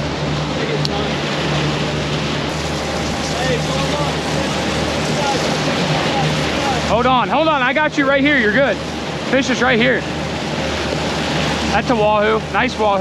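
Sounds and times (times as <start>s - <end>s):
wind rushing: 0.0s - 12.9s
churning wake water: 0.0s - 13.0s
outboard engines droning: 0.0s - 13.0s.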